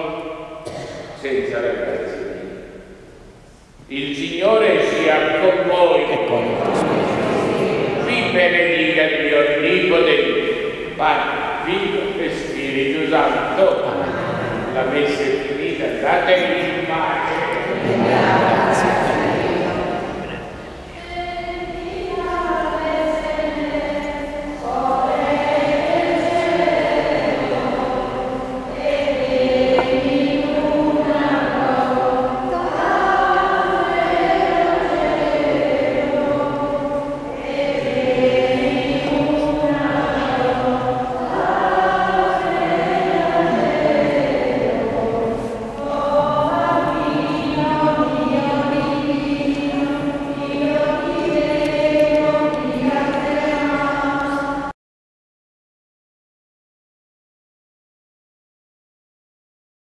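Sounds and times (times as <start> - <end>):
voices singing a hymn: 0.0 - 54.7.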